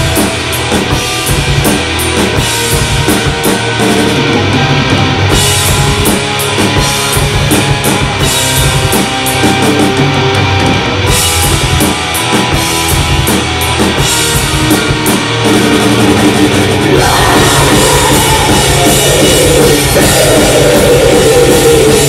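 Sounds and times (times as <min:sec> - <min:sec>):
bass guitar: 0:00.0 - 0:22.0
distorted electric guitars: 0:00.0 - 0:22.0
fast drumming on drum kit: 0:00.0 - 0:22.0.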